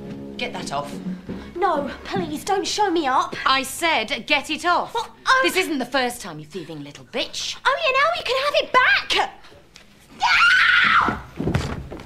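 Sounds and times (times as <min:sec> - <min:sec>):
woman screaming: 0:10.2 - 0:11.2.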